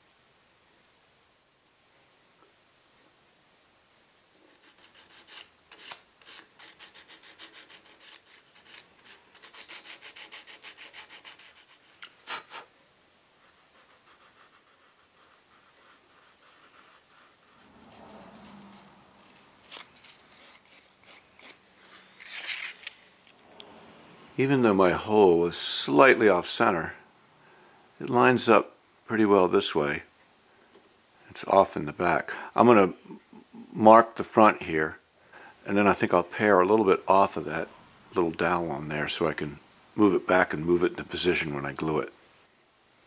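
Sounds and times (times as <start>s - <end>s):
file and sandpaper rubbing wood: 4.5s - 12.7s, 13.4s - 21.6s
scraping: 16.0s - 23.6s.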